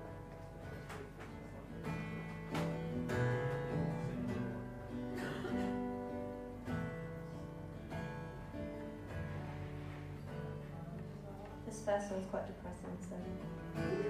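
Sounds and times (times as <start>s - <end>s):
acoustic guitar strummed slowly: 0.0s - 14.0s.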